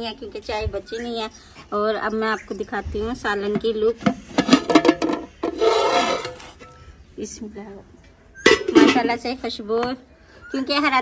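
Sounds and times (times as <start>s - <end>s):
lid scraping on pot rim: 4.1s - 6.8s.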